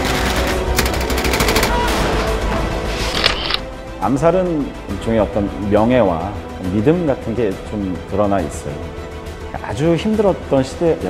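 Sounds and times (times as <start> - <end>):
dramatic background music: 0.0 - 11.0
automatic gunfire: 0.7 - 1.9.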